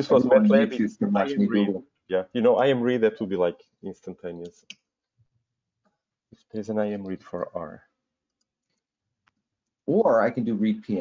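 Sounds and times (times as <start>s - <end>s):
man speaking: 0.0s - 4.7s, 6.6s - 7.8s, 9.9s - 11.0s.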